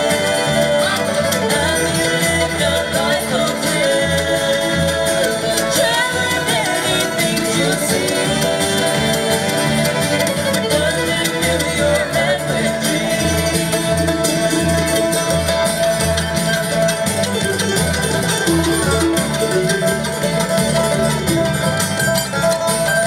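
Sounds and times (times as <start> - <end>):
two voices singing in harmony: 0.0 - 14.7
acoustic guitar: 0.0 - 23.0
fiddle: 0.0 - 23.0
upright bass: 0.0 - 23.0.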